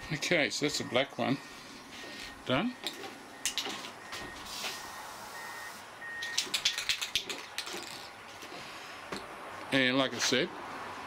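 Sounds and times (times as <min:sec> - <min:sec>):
spray can rattling: 0:06.3 - 0:08.2.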